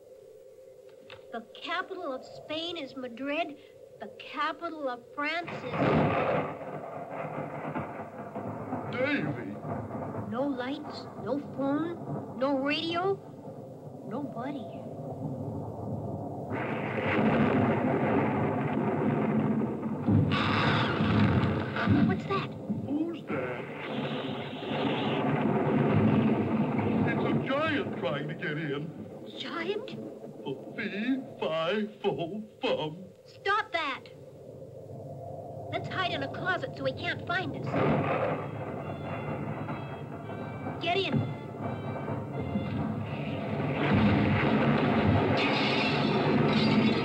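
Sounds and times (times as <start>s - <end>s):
rumbling thunder: 0.0s - 32.8s, 33.8s - 47.0s
wind: 0.0s - 47.0s
thunder crash: 1.2s - 32.2s, 34.0s - 47.0s.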